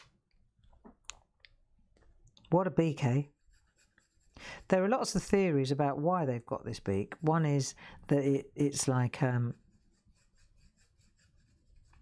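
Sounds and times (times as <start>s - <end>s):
coloured pencil strokes on paper: 2.7s - 12.0s.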